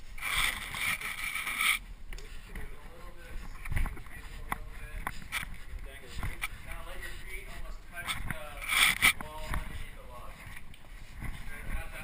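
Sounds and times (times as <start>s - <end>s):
rope rustling: 0.0s - 12.0s.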